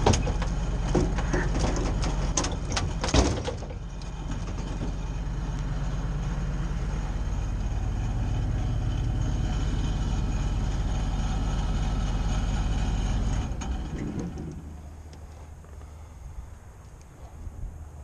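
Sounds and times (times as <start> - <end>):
hydraulics working: 0.0 - 16.1
truck engine humming: 0.0 - 18.0.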